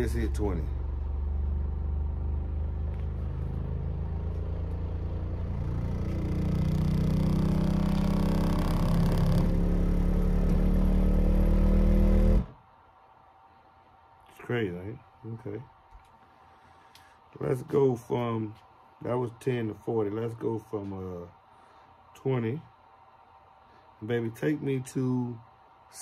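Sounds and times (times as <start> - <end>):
subwoofer test-tone sweep: 0.0 - 12.6.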